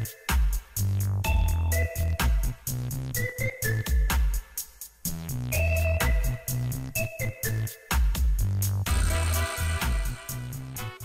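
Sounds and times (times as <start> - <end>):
upbeat music with drums and bass: 0.0 - 11.0.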